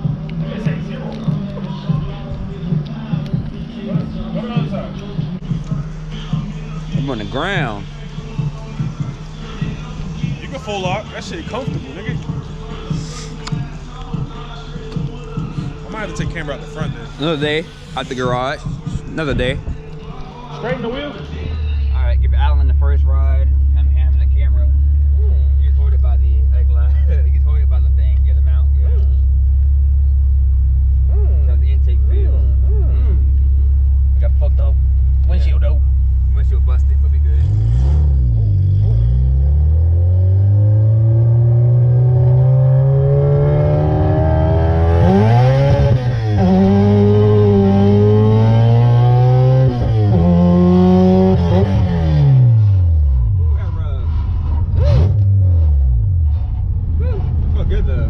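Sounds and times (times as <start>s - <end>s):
car engine accelerating and shifting: 0.0s - 58.0s.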